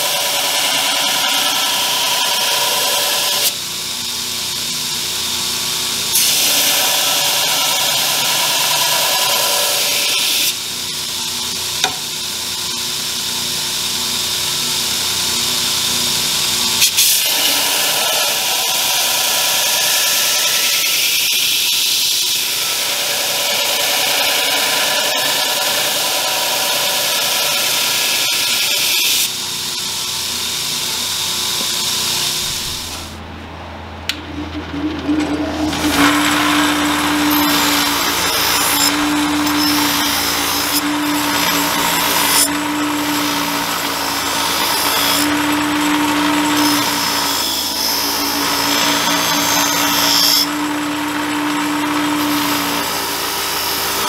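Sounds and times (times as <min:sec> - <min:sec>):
belt grinder grinding steel: 0:00.0 - 0:03.6, 0:06.1 - 0:12.1, 0:16.8 - 0:29.4, 0:34.3 - 0:54.0.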